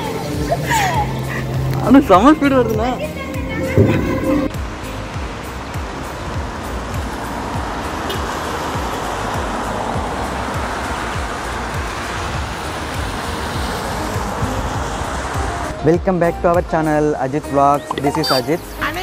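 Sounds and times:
wet street noise: 0:00.0 - 0:19.0
music with low beat: 0:03.6 - 0:15.6.

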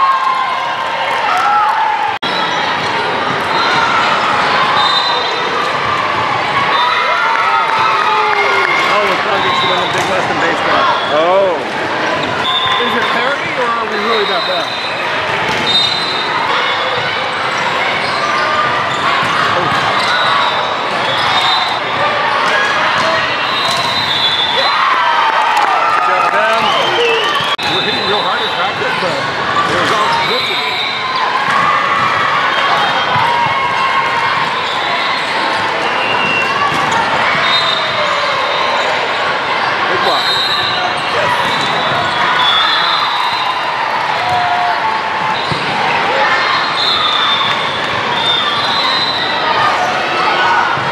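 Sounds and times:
voices talking and calling out: 0:02.2 - 0:25.0, 0:25.7 - 0:50.9
volleyballs hit and bouncing: 0:07.7 - 0:10.5, 0:15.0 - 0:17.9, 0:28.9 - 0:30.4, 0:35.8 - 0:37.4
sneakers squeaking on hardwood floor: 0:12.2 - 0:24.6, 0:40.0 - 0:43.4, 0:45.3 - 0:45.9.

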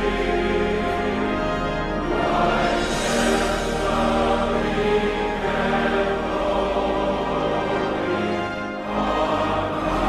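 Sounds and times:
choir singing a hymn: 0:00.0 - 0:10.0
instrumental accompaniment: 0:00.0 - 0:10.0.

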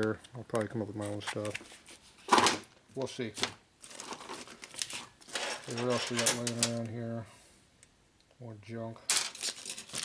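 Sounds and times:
plastic bag crinkling: 0:09.1 - 0:10.0.

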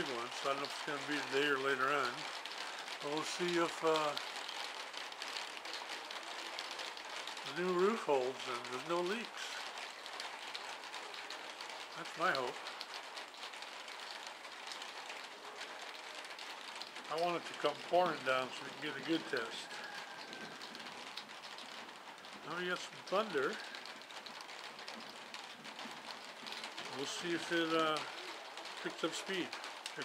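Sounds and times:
light rain on a metal roof: 0:00.0 - 0:30.0.

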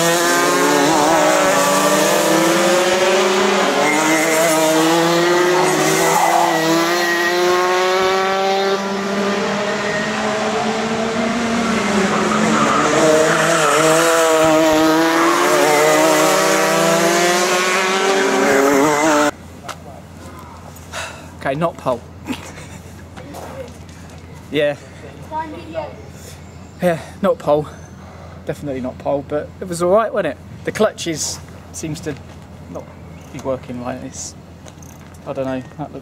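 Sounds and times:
kart engines racing: 0:00.0 - 0:19.4.

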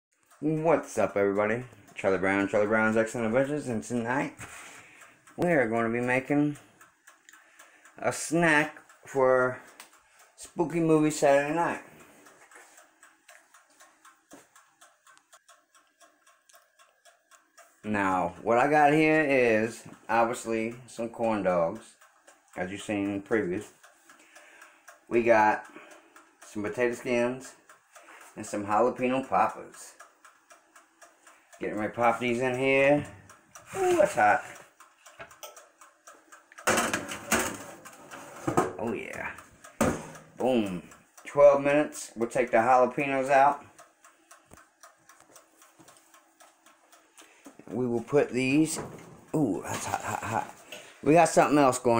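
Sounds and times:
mechanical timer ticking: 0:00.1 - 0:51.9
metal baking tray scraping: 0:36.7 - 0:38.7
sharp knocks: 0:39.8 - 0:40.2.

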